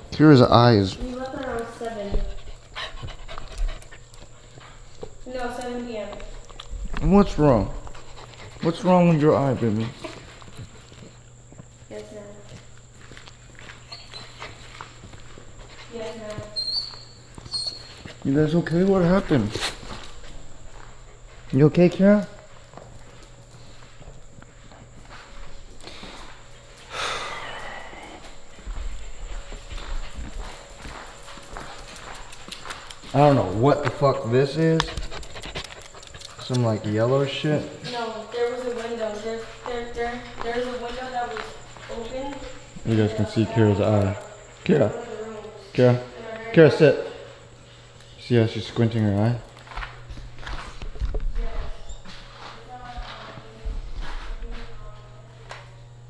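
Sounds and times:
dog panting: 0.9 - 11.8, 12.4 - 45.5
dog claws clicking on tile: 31.7 - 33.9, 34.8 - 36.8.

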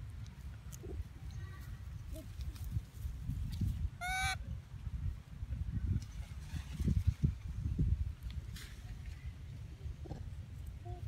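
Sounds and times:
baby macaque squealing: 4.0 - 4.4.

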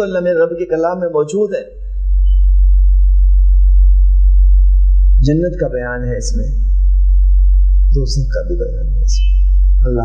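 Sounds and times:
loud low electrical mains hum: 0.0 - 10.0
person speaking: 5.1 - 7.0, 7.7 - 10.0.

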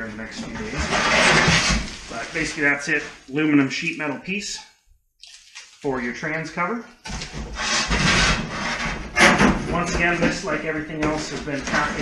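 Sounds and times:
cardboard rubbing and scraping: 0.4 - 2.6, 7.4 - 12.0
plastic wrapping crinkling: 5.2 - 6.0.

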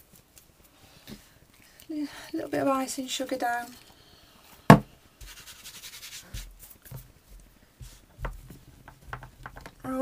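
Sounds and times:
soft thump: 4.7 - 4.9
hand brushing across board: 5.2 - 7.1.

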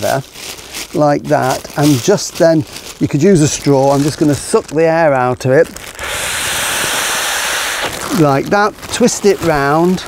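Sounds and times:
air sucked from plastic bag: 5.8 - 8.4.

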